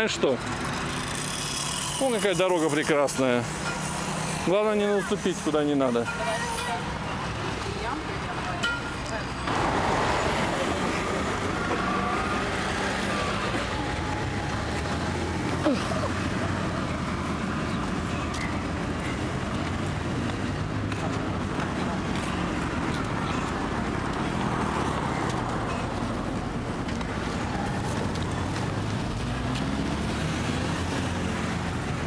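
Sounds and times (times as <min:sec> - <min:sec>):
road traffic passing: 0:00.0 - 0:32.0.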